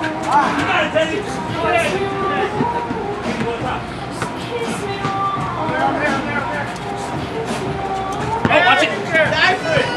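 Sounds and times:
faint music: 0.0 - 9.9
people shouting and chattering: 0.0 - 9.9.

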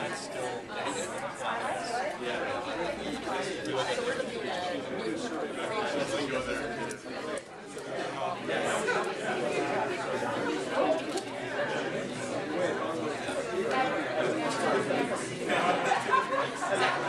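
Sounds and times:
hubbub of overlapping conversations: 0.0 - 17.0.

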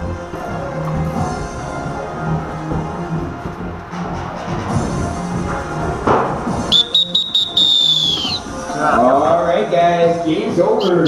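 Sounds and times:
background music: 0.0 - 11.0
long high whistle blast: 6.7 - 8.4.

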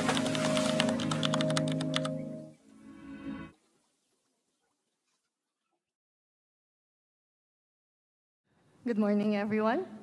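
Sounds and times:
keyboard typing clicks: 0.0 - 2.2.

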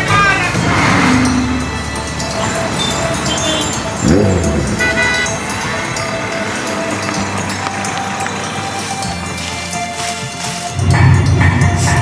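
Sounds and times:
background music: 0.0 - 12.0
road traffic noise: 0.0 - 12.0.

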